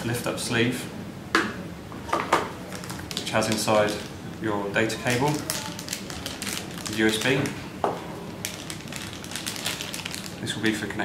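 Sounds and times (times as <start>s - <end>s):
plastic bag crinkling: 2.7s - 11.0s.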